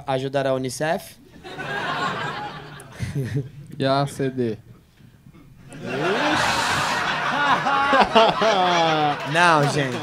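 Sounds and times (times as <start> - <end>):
audience laughing: 1.4 - 3.5, 5.7 - 10.0
audience shouts: 5.8 - 10.0.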